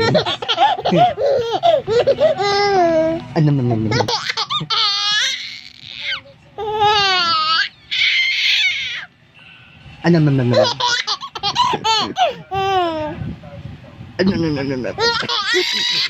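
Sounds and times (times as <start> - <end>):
baby laughing: 0.0 - 9.0, 10.5 - 13.1, 15.0 - 16.0.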